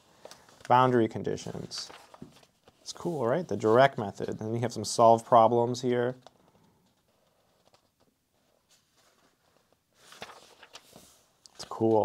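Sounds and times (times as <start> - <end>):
paper pages rustling: 0.0 - 12.0.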